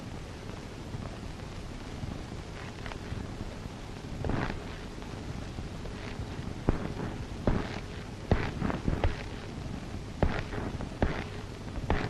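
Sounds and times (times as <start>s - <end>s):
film soundtrack hiss: 0.0s - 12.0s
low hum: 0.0s - 12.0s.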